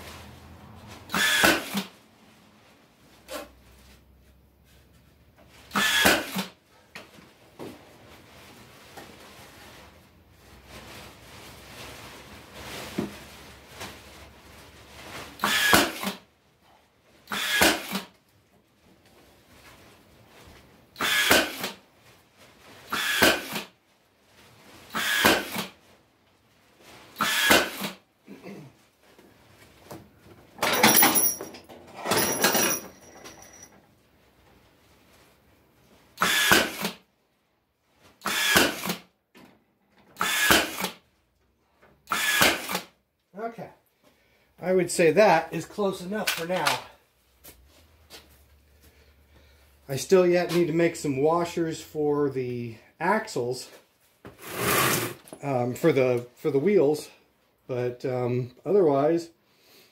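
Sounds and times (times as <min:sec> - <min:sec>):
nailer firing into wood: 0:01.1 - 0:01.9, 0:05.8 - 0:06.6, 0:15.4 - 0:16.2, 0:17.3 - 0:18.1, 0:21.0 - 0:21.8, 0:22.9 - 0:23.7, 0:24.9 - 0:25.8, 0:27.2 - 0:28.0, 0:36.2 - 0:37.0, 0:38.2 - 0:39.1, 0:40.2 - 0:41.0, 0:42.1 - 0:43.0.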